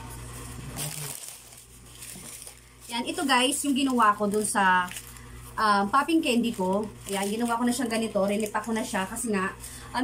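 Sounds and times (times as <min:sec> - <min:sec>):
low steady hum: 0:00.0 - 0:10.0
plastic packet rustling: 0:00.3 - 0:09.5.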